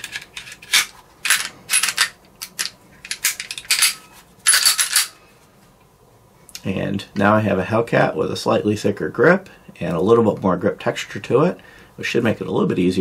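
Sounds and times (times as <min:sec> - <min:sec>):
metallic clicks and scrapes: 0:00.0 - 0:05.2.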